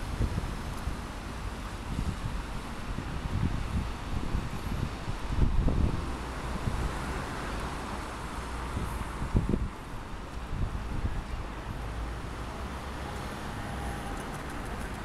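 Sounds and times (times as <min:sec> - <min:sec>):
wind buffeting microphone: 0:00.0 - 0:12.0
street traffic: 0:00.0 - 0:15.0.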